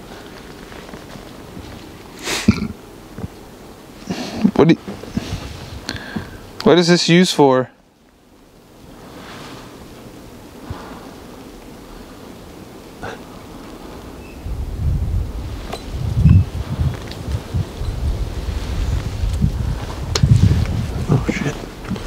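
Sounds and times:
wind noise on microphone: 4.9s - 6.5s, 14.1s - 22.0s.

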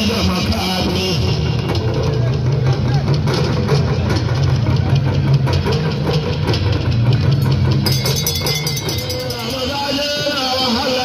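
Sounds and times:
rapid drumming music: 0.0s - 11.0s.

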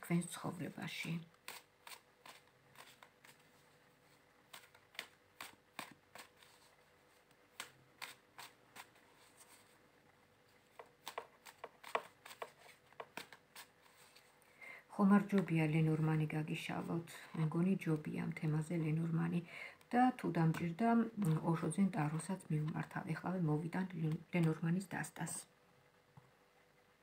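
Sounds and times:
cards being shuffled: 1.4s - 9.8s, 10.6s - 14.4s.

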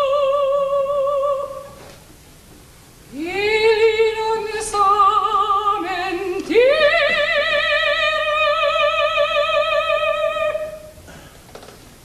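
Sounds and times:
woman singing opera: 0.0s - 1.8s, 3.1s - 11.0s.

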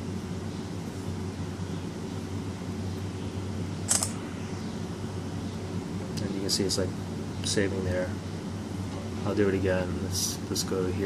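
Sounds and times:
low background hum: 0.0s - 11.0s
phone screenshot shutter click: 3.9s - 4.2s.

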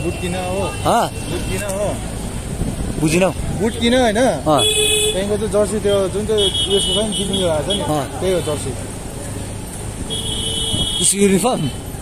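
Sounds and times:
people talking: 3.0s - 8.9s, 11.0s - 11.8s.

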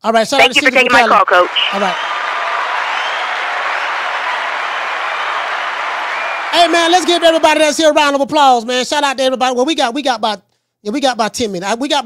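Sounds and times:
crowd applause: 1.3s - 8.0s.

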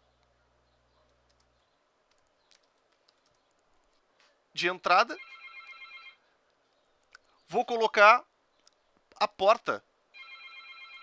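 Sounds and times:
fluttering electronic ringing tone: 10.2s - 11.0s.

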